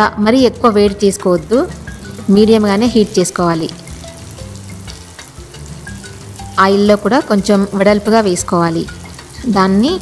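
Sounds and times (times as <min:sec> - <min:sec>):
dough sizzling in hot oil: 0:00.4 - 0:10.0.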